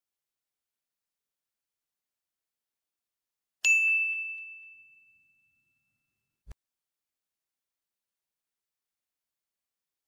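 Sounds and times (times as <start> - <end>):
bell ding: 3.6 - 6.1.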